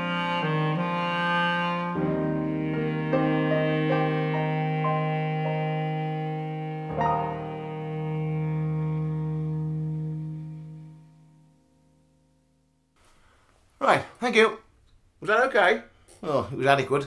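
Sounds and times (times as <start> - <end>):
clarinet held low note: 0.0 - 11.7
piano notes and chord: 2.0 - 9.8.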